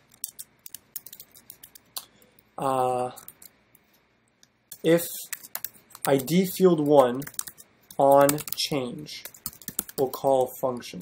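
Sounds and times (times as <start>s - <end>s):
computer keyboard keys clicking: 0.1s - 2.4s, 3.2s - 3.6s, 4.7s - 10.5s.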